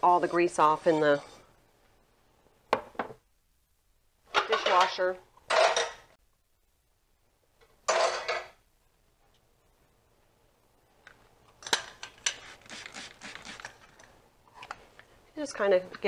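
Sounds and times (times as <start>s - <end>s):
metal pots and pans clattering: 4.3s - 6.1s, 7.9s - 8.6s.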